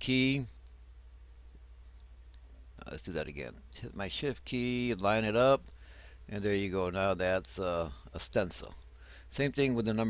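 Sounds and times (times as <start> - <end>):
man speaking: 0.0 - 0.6, 2.8 - 5.7, 6.3 - 10.0
low electrical hum: 0.0 - 10.0.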